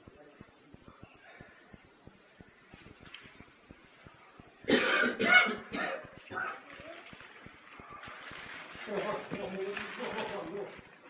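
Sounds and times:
person coughing harshly: 0:04.7 - 0:06.6.

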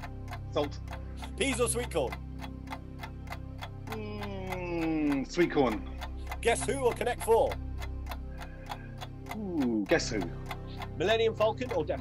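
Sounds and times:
background music: 0:00.0 - 0:12.0
countdown clock ticking: 0:00.0 - 0:12.0.

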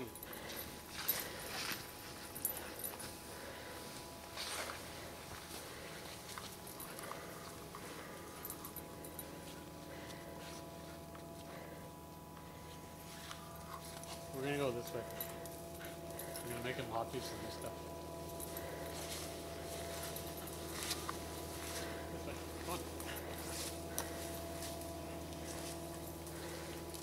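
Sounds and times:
rustles and crunches in snow: 0:00.4 - 0:07.6, 0:12.6 - 0:15.2, 0:18.5 - 0:27.0.

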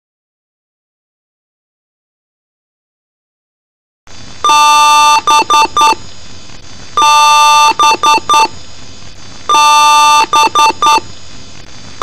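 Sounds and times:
processed computer beeps: 0:04.4 - 0:06.0, 0:07.0 - 0:08.6, 0:09.5 - 0:11.1.

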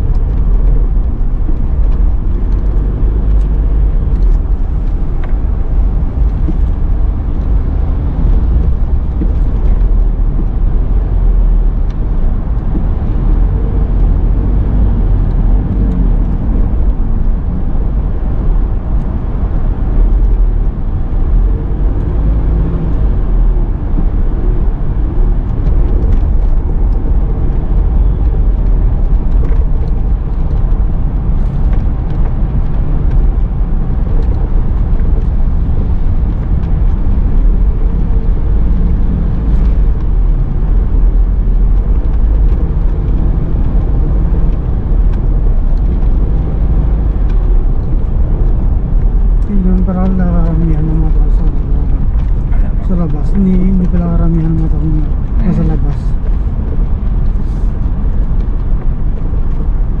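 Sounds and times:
car engine hum: 0:00.0 - 1:00.0
car road noise rumble: 0:00.0 - 1:00.0.

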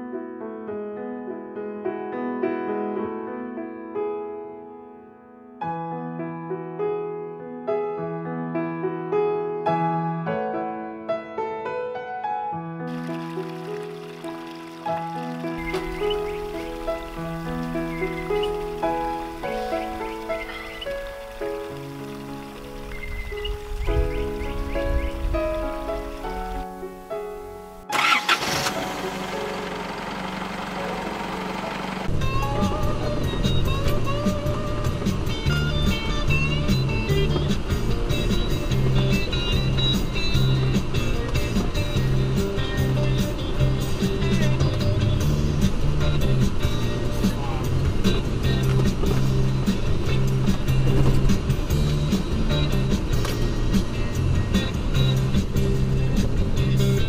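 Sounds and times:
melodic background music: 0:12.9 - 0:57.0.

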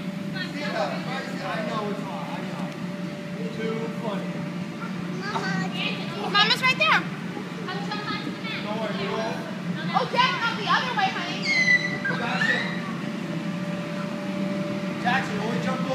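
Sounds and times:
steady low hum: 0:00.0 - 0:15.9
children calling and squealing: 0:04.8 - 0:08.4, 0:09.9 - 0:14.4.

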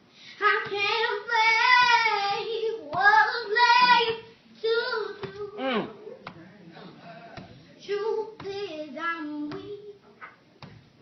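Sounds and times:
girl singing: 0:00.2 - 0:05.9, 0:07.8 - 0:10.1.

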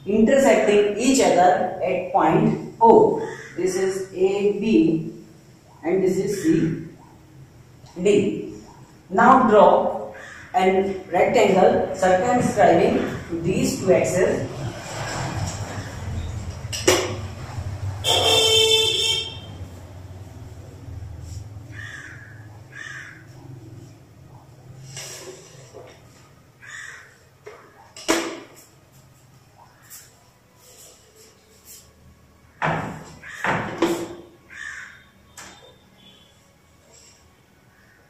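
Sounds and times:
crow cawing: 0:03.2 - 0:03.6, 0:10.1 - 0:10.6, 0:21.7 - 0:23.6, 0:26.6 - 0:27.8, 0:33.2 - 0:33.5, 0:34.5 - 0:35.2, 0:37.7 - 0:38.0
vehicle horn honking: 0:18.0 - 0:19.6, 0:35.3 - 0:36.4.

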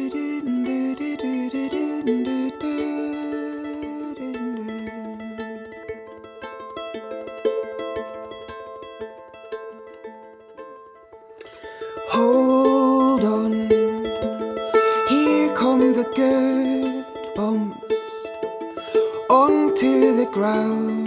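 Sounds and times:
plucked acoustic guitar and viola: 0:00.0 - 0:21.0.

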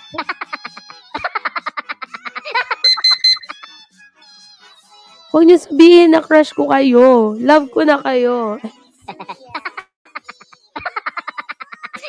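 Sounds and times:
electronic alarm beeps: 0:02.8 - 0:03.6
high-pitched beeps: 0:02.8 - 0:03.6.

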